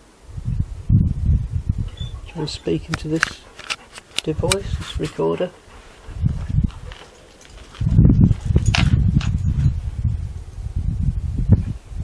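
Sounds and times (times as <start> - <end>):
wind buffeting microphone: 0.2 - 12.0.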